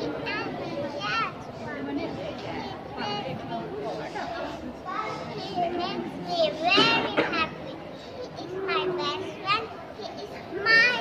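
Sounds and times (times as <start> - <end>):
small children's voices: 0.0 - 11.0
girl speaking: 4.8 - 11.0.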